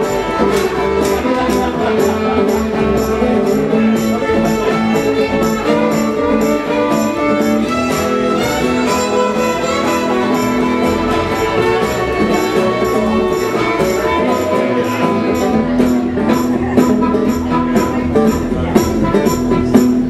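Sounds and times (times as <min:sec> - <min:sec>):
bowed fiddle: 0:00.0 - 0:20.0
plucked upright bass: 0:00.0 - 0:20.0
strummed acoustic guitar: 0:00.0 - 0:20.0.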